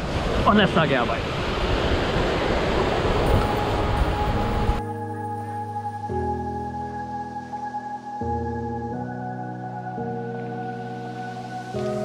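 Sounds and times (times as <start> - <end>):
slow keyboard music: 3.2 - 12.0.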